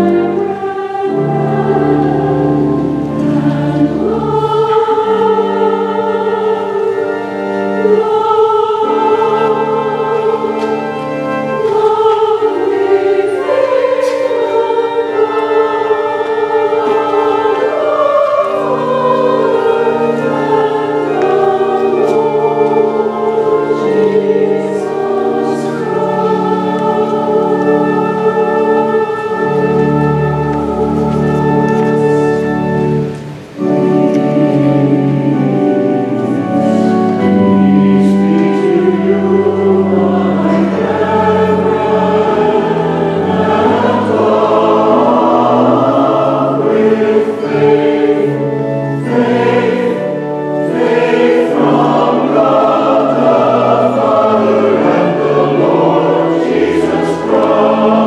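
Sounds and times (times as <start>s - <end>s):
choir singing held chords: 0.0s - 58.0s.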